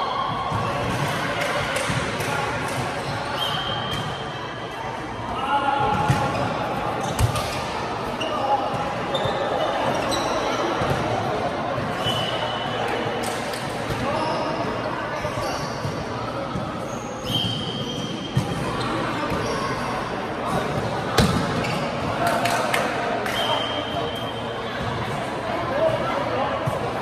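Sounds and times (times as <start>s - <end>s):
shoes squeaking on court: 6.0s - 11.0s, 15.2s - 20.0s.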